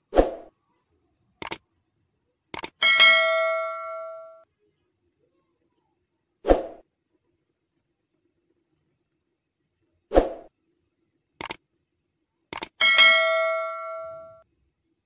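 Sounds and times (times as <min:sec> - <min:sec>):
mouse clicks: 0:01.4 - 0:01.6, 0:02.5 - 0:02.8, 0:11.4 - 0:11.6, 0:12.5 - 0:12.8
bell ding: 0:02.8 - 0:04.4, 0:12.8 - 0:14.4.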